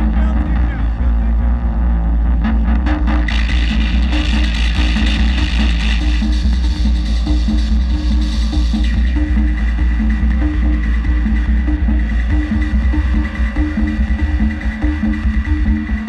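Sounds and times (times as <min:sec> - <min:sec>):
heavy bass drone: 0:00.0 - 0:16.0.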